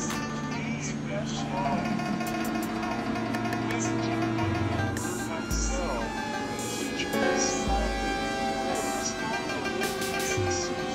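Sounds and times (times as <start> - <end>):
drone tones: 1.4 - 10.9
person's voice: 5.2 - 6.1, 7.0 - 10.9.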